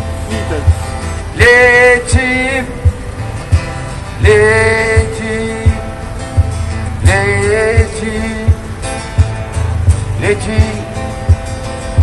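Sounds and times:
pop-rock song: 0.0s - 12.0s
kick drum beat: 0.7s - 12.0s.

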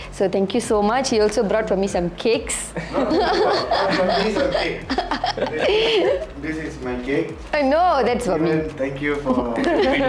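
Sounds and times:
people laughing: 2.8s - 6.5s, 9.3s - 10.0s.

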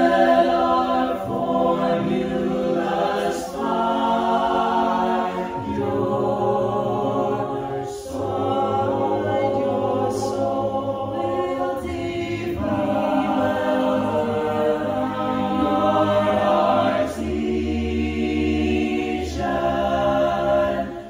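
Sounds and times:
a cappella group singing chords: 0.0s - 21.0s.

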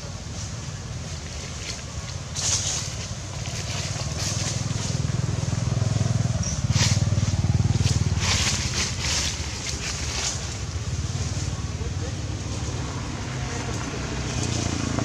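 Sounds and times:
pulsing engine rumble: 0.0s - 15.0s.

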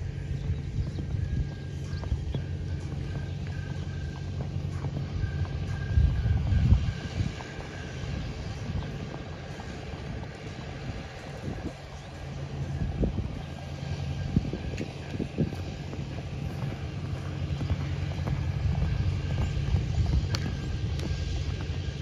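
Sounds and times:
low engine hum: 0.0s - 22.0s
wind buffeting microphone: 0.0s - 22.0s.

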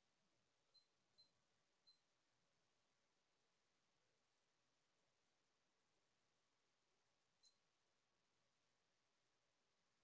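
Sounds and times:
faint high-pitched blips: 0.6s - 2.2s, 7.3s - 7.8s.

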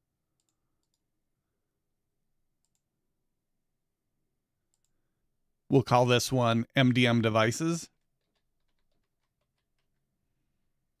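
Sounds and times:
computer mouse clicks: 0.4s - 1.1s, 2.6s - 2.9s, 4.7s - 5.0s.

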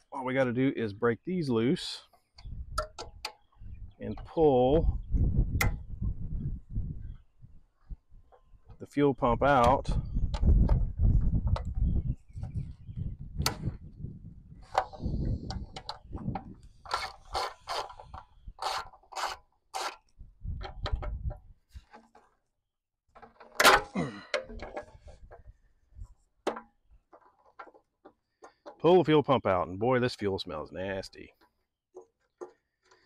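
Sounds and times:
tool scraping on steel tank: 16.7s - 20.1s.

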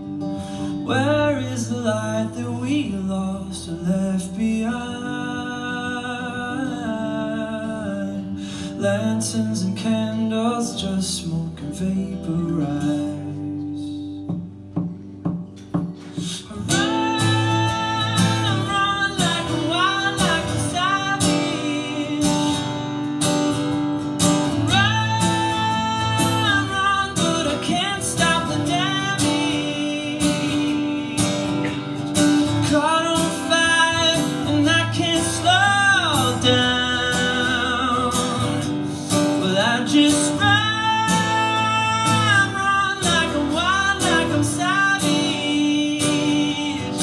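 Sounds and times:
acoustic guitar strumming: 0.0s - 47.0s
man singing: 0.7s - 14.4s, 16.0s - 23.0s, 24.2s - 47.0s.

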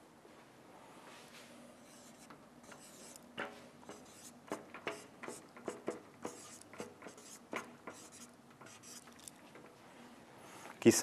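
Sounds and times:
marker pen squeaking on whiteboard: 1.8s - 3.2s, 3.8s - 9.3s.

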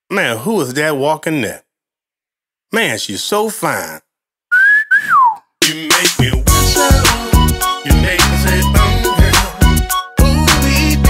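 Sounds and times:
wolf whistle: 4.5s - 5.5s
man singing: 5.6s - 11.0s
band playing: 6.0s - 11.0s.

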